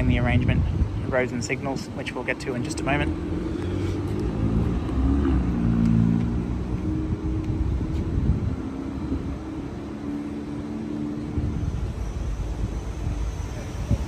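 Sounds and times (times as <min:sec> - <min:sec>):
vehicle engine passing: 0:02.2 - 0:13.8.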